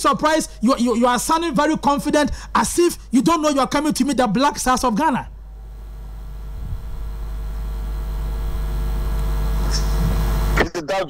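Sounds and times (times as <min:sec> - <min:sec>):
low electrical hum: 0:00.3 - 0:10.7.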